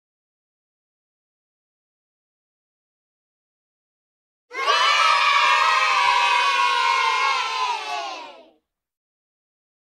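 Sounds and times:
children cheering: 0:04.5 - 0:08.6.

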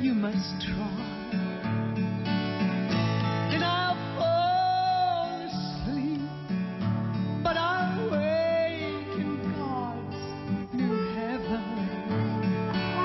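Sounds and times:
woman singing: 0:00.0 - 0:01.5, 0:03.5 - 0:06.4, 0:07.4 - 0:13.0
acoustic guitar and band: 0:00.0 - 0:13.0.

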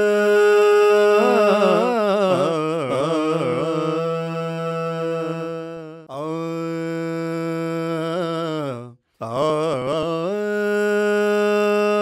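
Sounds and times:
person singing chant-like notes: 0:00.0 - 0:12.0.

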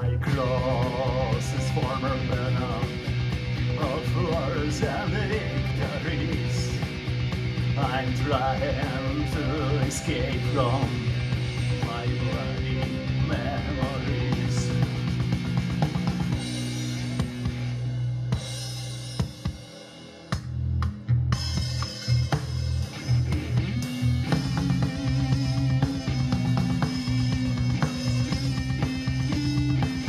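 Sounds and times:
electric guitar playing: 0:00.0 - 0:18.4, 0:21.4 - 0:30.0
backing track with drums and bass: 0:00.0 - 0:30.0.

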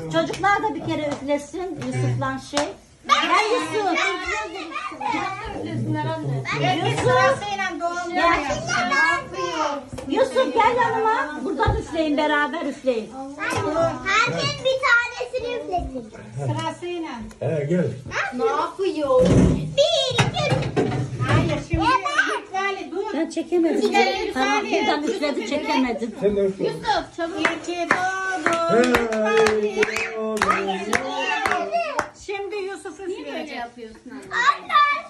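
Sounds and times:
children talking and calling out: 0:02.9 - 0:11.8, 0:13.1 - 0:16.4, 0:18.0 - 0:27.0, 0:27.6 - 0:35.0.

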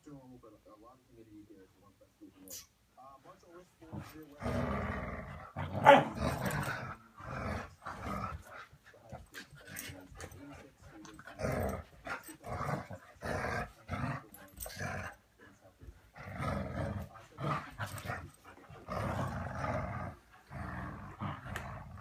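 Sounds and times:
dogs growling in play: 0:03.9 - 0:22.0.

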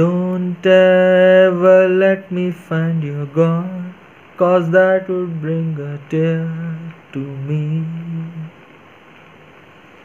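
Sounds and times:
man singing unaccompanied: 0:00.0 - 0:08.8.

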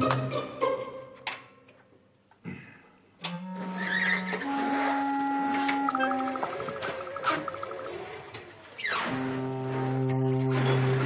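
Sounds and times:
held synth notes: 0:03.2 - 0:11.0.

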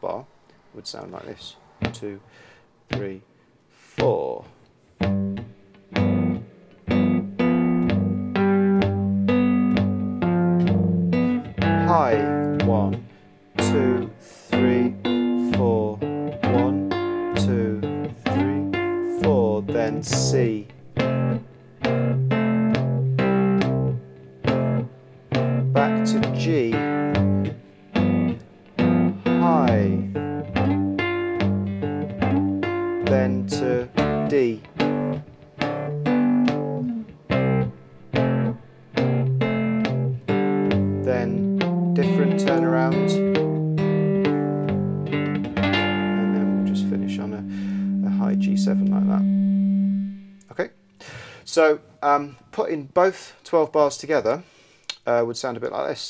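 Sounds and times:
fingerpicked blues guitar: 0:05.0 - 0:50.6.

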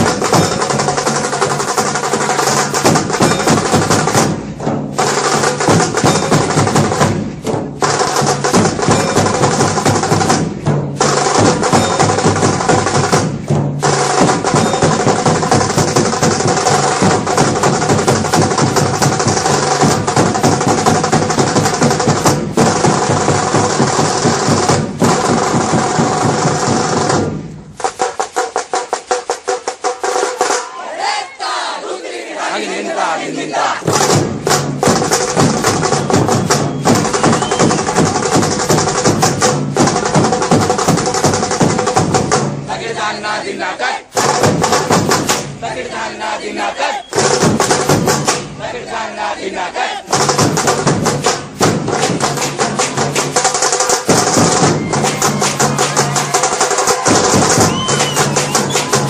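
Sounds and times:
fast sharp drum strokes: 0:00.0 - 0:31.1, 0:33.8 - 0:42.9, 0:44.1 - 0:45.8, 0:47.1 - 0:49.0, 0:50.0 - 0:59.0
loud procession music: 0:00.0 - 0:31.8, 0:32.4 - 0:59.0.

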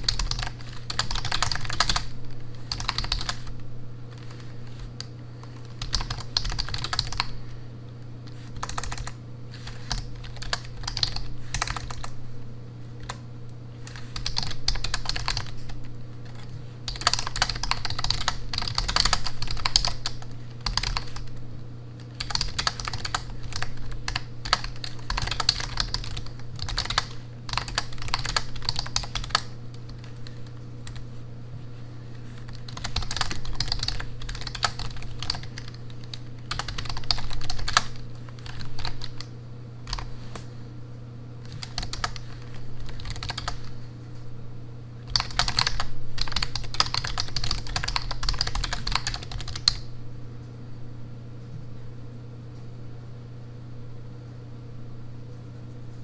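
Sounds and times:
computer keyboard typing: 0:00.0 - 0:07.4, 0:08.3 - 0:12.2, 0:13.0 - 0:13.2, 0:13.8 - 0:21.4, 0:22.0 - 0:31.1, 0:32.2 - 0:40.5, 0:41.4 - 0:43.8, 0:45.0 - 0:49.9
steady low hum: 0:00.0 - 0:56.0.

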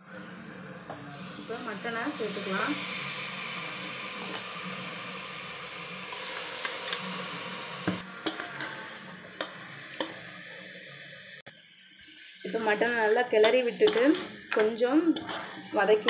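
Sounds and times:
meat sizzling in hot oil: 0:01.1 - 0:16.0.

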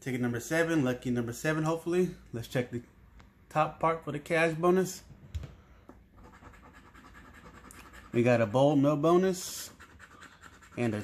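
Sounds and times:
coin scratching lottery ticket: 0:06.2 - 0:11.0.

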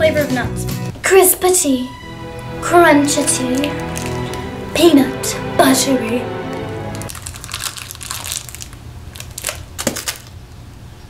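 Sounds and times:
teeth crunching candy bar: 0:07.1 - 0:10.5.

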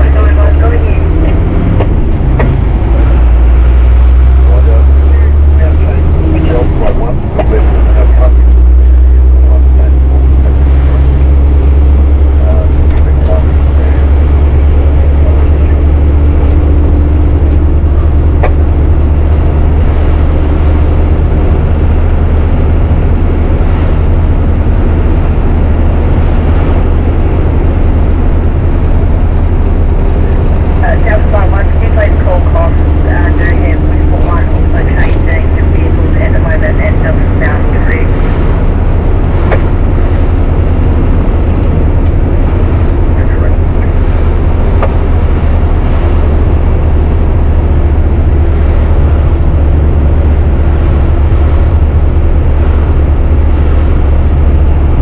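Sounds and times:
diesel truck engine driving: 0:00.0 - 0:55.0.

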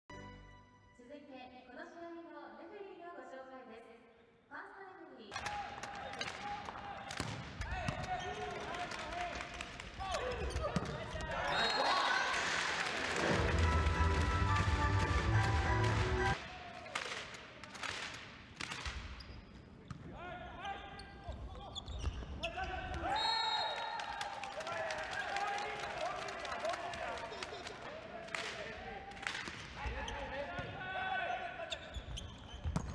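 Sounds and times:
music over speakers: 0:13.2 - 0:16.4.

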